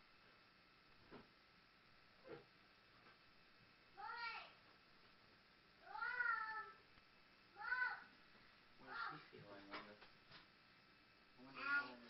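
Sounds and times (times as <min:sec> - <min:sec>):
cat meowing: 0:05.9 - 0:06.8.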